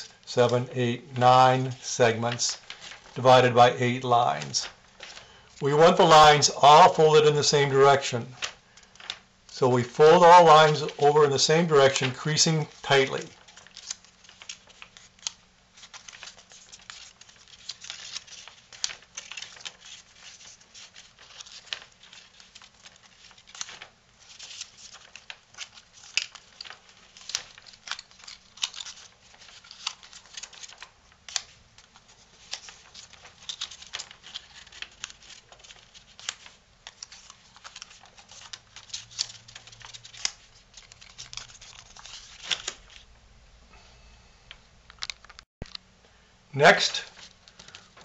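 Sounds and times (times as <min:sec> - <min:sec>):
cardstock crinkling and clicking: 0:01.7 - 0:07.0, 0:07.6 - 0:43.1, 0:44.9 - 0:45.8, 0:47.0 - 0:48.0.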